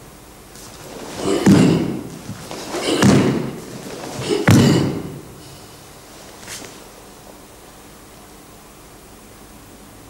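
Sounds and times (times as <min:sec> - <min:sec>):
bare feet stamping on wooden floor: 0:00.6 - 0:05.6.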